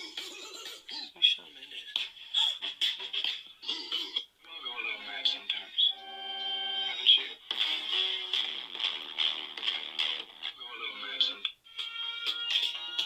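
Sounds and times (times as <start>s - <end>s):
song through phone speaker: 0.0s - 13.0s
song with held sung notes: 5.8s - 13.0s.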